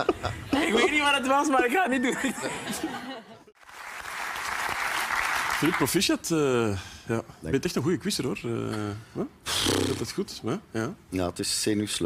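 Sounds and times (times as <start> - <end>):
studio audience applauding: 3.6 - 6.1.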